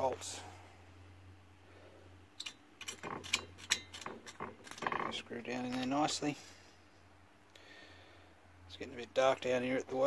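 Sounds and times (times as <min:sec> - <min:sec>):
bolts clinking against metal: 0:02.4 - 0:06.2.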